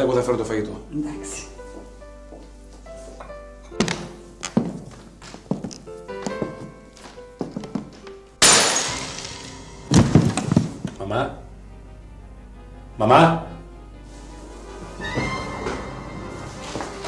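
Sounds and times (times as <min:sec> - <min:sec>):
soft background music: 0:00.0 - 0:17.0
glass dish shattering: 0:08.4 - 0:10.3.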